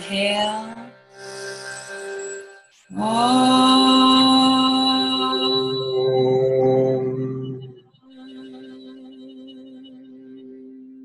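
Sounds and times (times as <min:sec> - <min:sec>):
person chanting om: 0:02.8 - 0:11.0.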